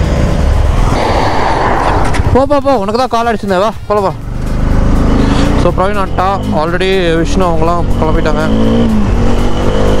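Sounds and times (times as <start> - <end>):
wind noise: 0.6 - 2.8
motorcycle engine running: 2.0 - 10.0.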